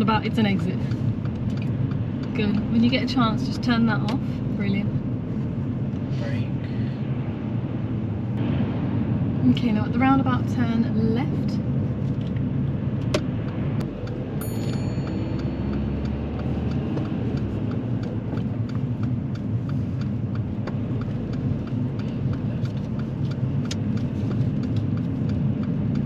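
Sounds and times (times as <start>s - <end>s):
turn indicator ticking: 0.0s - 5.8s, 12.2s - 26.0s
car engine and road rumble: 0.0s - 26.0s.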